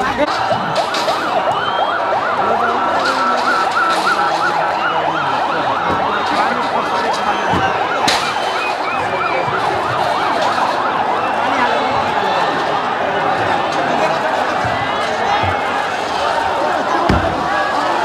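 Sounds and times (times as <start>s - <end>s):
large crowd noise: 0.0s - 18.0s
police sirens wailing: 0.0s - 18.0s.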